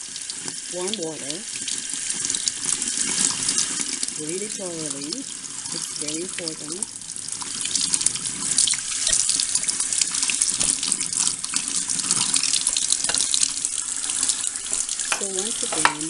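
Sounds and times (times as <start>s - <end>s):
tap water splashing into sink: 7.4s - 16.0s.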